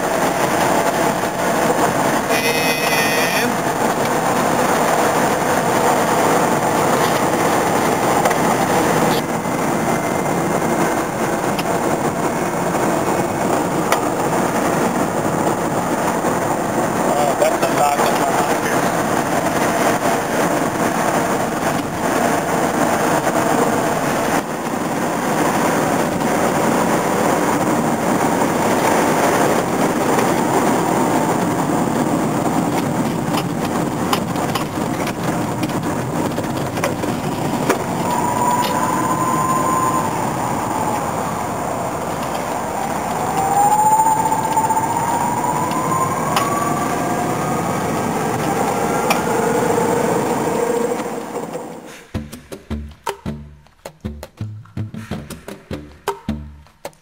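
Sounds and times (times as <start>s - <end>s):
tyre and wind noise: 0.0s - 57.0s.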